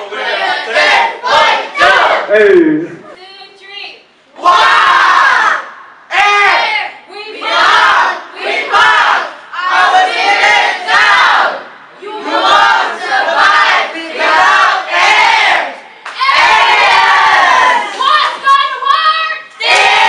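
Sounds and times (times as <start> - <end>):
children chanting a team cheer: 0.0 - 2.3, 4.4 - 20.0.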